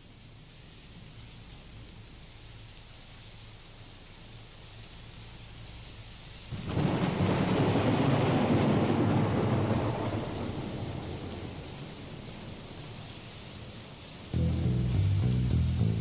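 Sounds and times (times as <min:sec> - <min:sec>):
steady rain: 0:00.0 - 0:16.0
long roll of thunder: 0:06.5 - 0:13.0.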